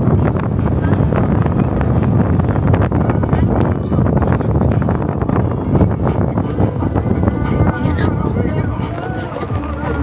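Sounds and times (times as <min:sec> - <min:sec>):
car rumble: 0:00.0 - 0:10.0
music playing: 0:00.0 - 0:10.0
voice: 0:07.6 - 0:10.0.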